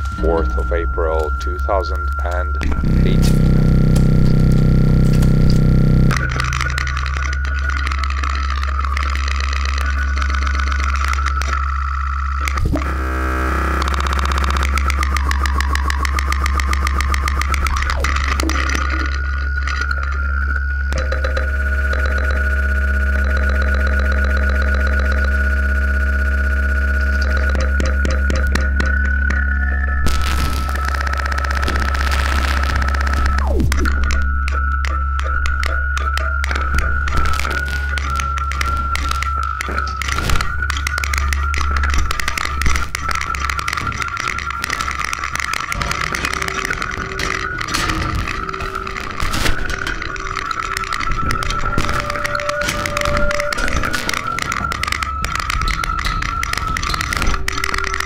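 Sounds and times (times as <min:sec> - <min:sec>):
wavering high tone: 0:00.0 - 0:12.8, 0:14.1 - 0:58.0
steady low hum: 0:00.0 - 0:55.9
buzzing stuttering noise: 0:00.0 - 0:58.0.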